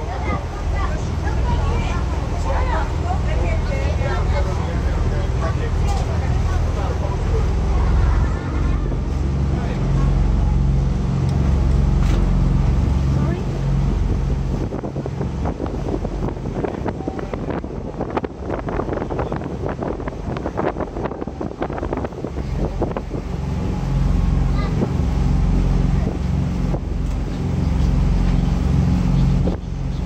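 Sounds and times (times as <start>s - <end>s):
voices chattering: 0.0s - 14.8s, 15.4s - 30.0s
boat engine humming: 0.0s - 30.0s
wind buffeting microphone: 0.0s - 30.0s.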